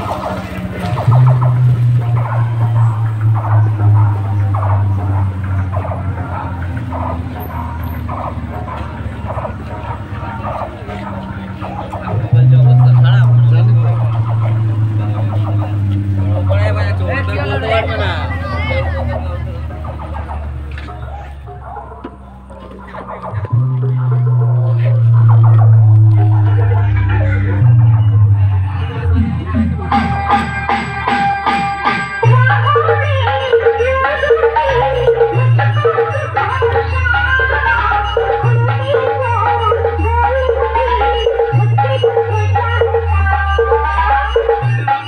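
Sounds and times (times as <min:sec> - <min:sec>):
music with heavy bass: 0:00.0 - 0:45.0
people's voices: 0:00.0 - 0:45.0.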